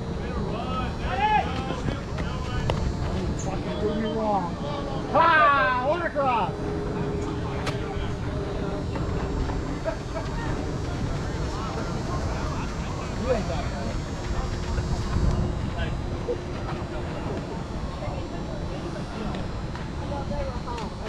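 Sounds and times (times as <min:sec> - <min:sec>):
faint steady hum: 0:00.0 - 0:21.0
steady low rumble: 0:00.0 - 0:21.0.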